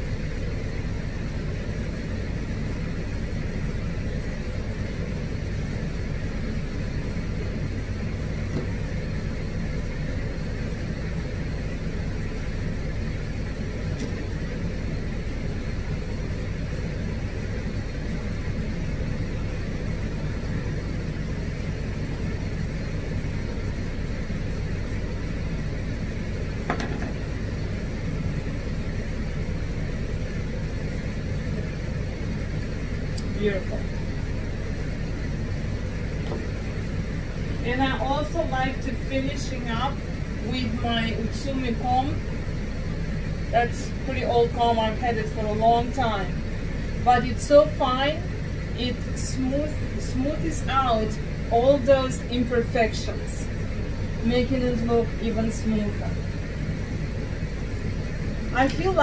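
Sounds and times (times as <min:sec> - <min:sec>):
low motor hum: 0:00.0 - 0:59.0.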